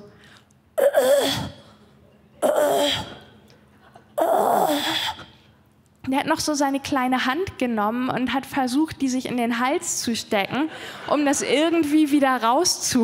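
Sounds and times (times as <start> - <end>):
woman retching: 0.8 - 1.6, 2.4 - 3.3, 4.2 - 5.2.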